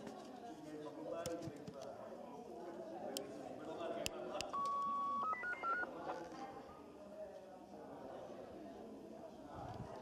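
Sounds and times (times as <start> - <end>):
electronic beeps: 4.5 - 5.9.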